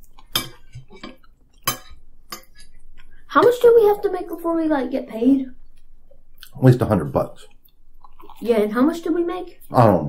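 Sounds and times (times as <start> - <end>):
forks clinking on plates: 0.3 - 2.7.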